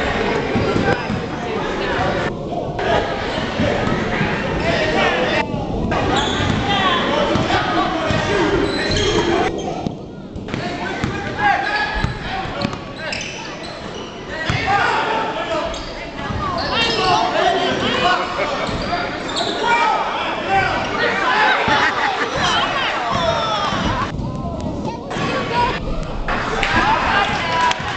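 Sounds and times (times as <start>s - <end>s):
voices of players and spectators: 0.0s - 27.9s.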